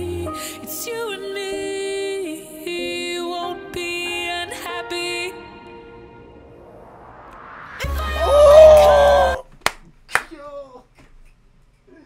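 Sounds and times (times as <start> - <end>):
women singing in harmony: 0.0 - 6.3, 7.8 - 9.4.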